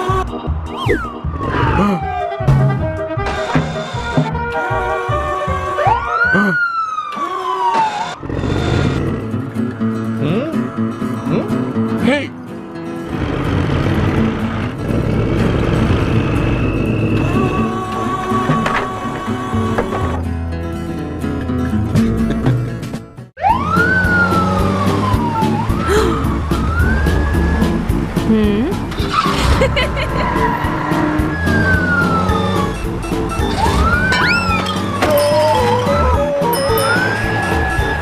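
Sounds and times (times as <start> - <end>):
siren wailing: 0.0 - 8.9, 23.4 - 27.8, 30.2 - 38.0
siren-like whistle gliding down: 5.2 - 8.2, 30.9 - 38.0.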